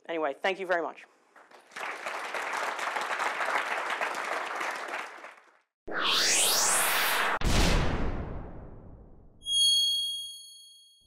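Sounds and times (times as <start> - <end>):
whoosh: 5.9 - 9.3
bright high chime: 9.4 - 11.0.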